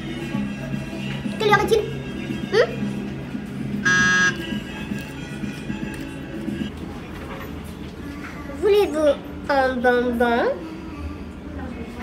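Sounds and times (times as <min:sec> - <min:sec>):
background music: 0:00.0 - 0:06.7
electronic buzzer blare: 0:03.8 - 0:04.5.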